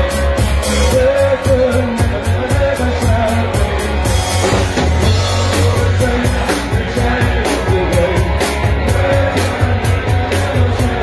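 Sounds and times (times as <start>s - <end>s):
bass guitar: 0.0s - 11.0s
drum kit with cymbals: 0.0s - 11.0s
electric guitar: 0.0s - 11.0s.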